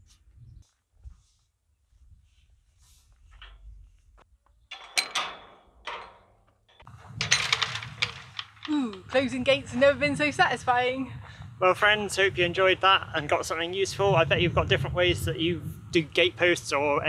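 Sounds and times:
metal clattering: 4.6 - 10.0
metal gate latch clanking: 4.7 - 9.3.

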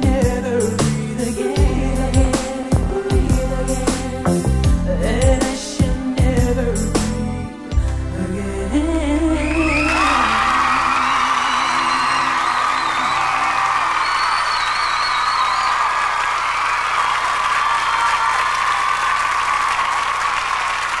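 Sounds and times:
audience applauding and cheering: 9.4 - 21.0
high wavering cheer: 9.4 - 21.0.

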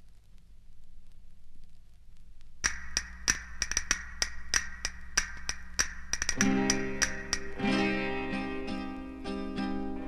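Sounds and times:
small percussion instrument tapping: 2.6 - 7.6.

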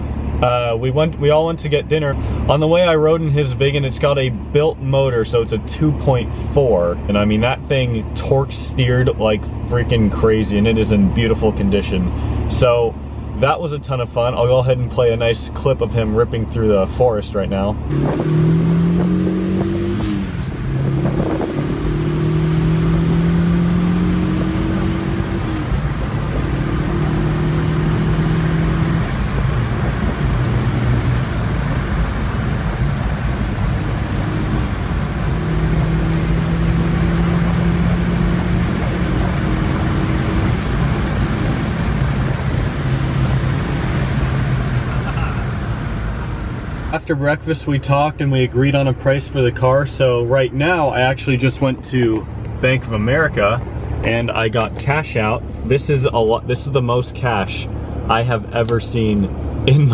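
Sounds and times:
turbocharged car engine accelerating: 17.8 - 47.1.

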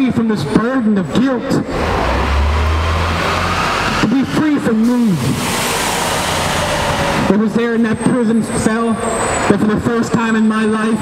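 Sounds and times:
road noise: 0.0 - 11.0
passing vehicle engine rumble: 1.0 - 10.2.

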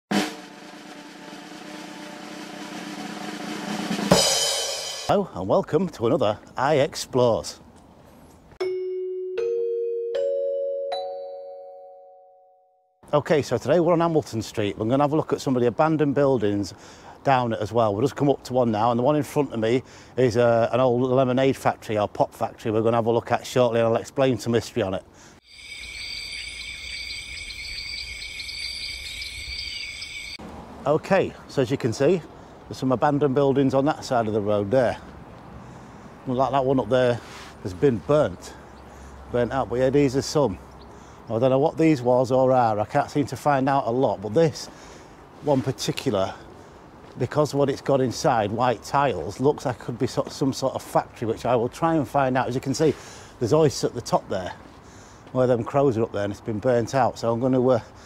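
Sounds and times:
drum roll: 0.1 - 5.1
opening music hit: 0.1 - 5.1
insect chirps: 25.4 - 30.4
insects trilling: 25.4 - 30.4.

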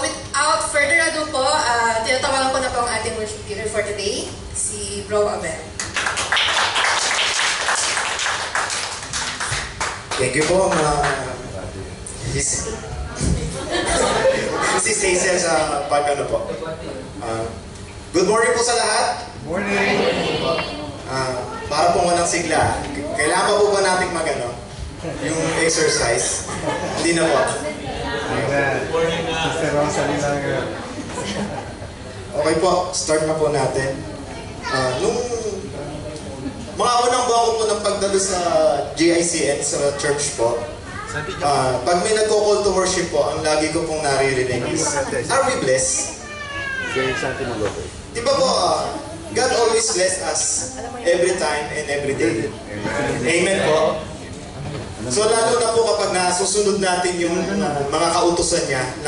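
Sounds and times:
crowd applauding: 5.8 - 11.4.

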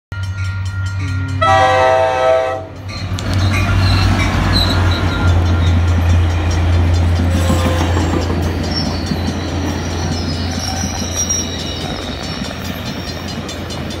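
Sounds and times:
train coaches rumbling on rails: 0.1 - 14.0
locomotive engine hum: 0.2 - 14.0
train horn: 1.0 - 2.8, 7.3 - 8.3
high wheel squeal: 3.3 - 14.0.

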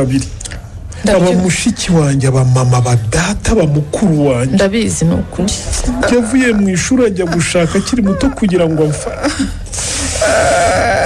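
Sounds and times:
person sobbing: 7.3 - 11.0.

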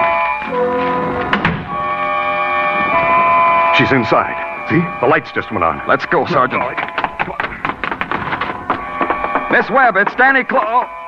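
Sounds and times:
background music: 0.0 - 11.0
hurried footsteps: 2.6 - 11.0.

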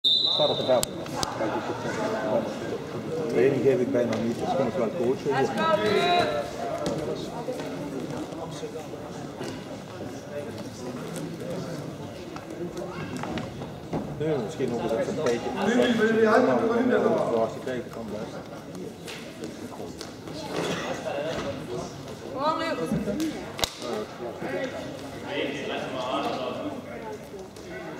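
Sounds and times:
quiet voices in sports hall: 0.0 - 27.9.

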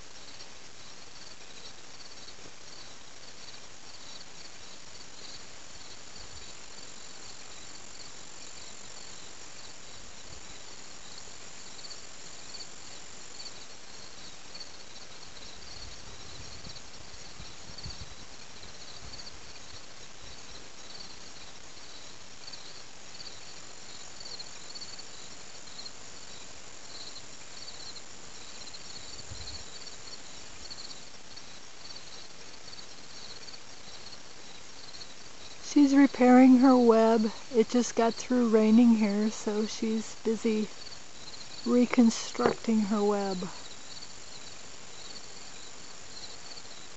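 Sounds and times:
high continuous insect trill: 0.0 - 46.9
insects chirping: 0.0 - 46.9.

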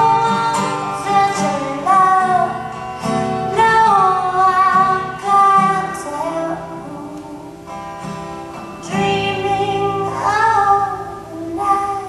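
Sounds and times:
woman singing: 0.0 - 7.7, 8.8 - 12.0
acoustic guitar: 0.0 - 12.0.

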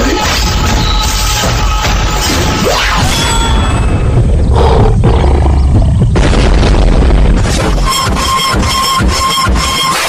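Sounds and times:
tiger roar: 4.5 - 6.0.

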